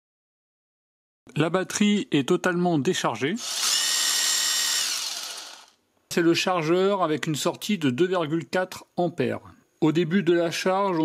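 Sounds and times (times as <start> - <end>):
impact driver motor whine: 3.4 - 5.8.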